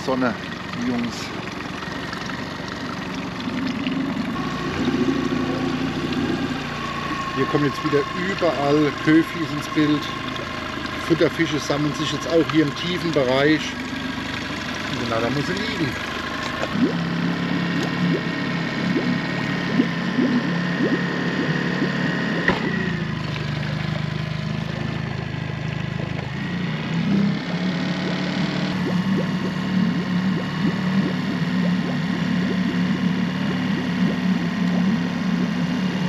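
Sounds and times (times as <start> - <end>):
outboard motor idling: 0.0 - 36.0.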